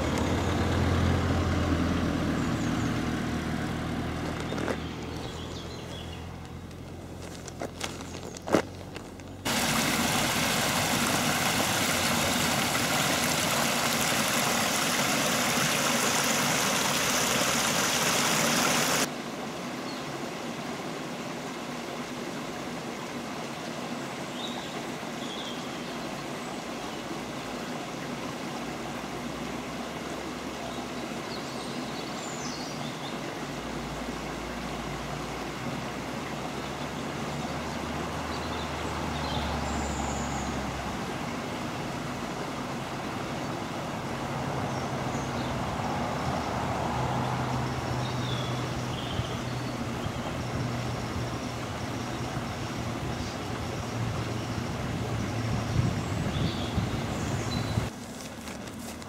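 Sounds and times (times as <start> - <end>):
water rushing over weir: 9.5 - 59.0.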